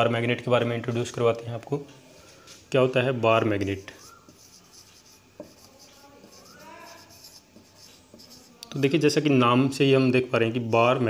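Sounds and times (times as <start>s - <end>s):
marker pen writing on whiteboard: 3.6s - 9.0s.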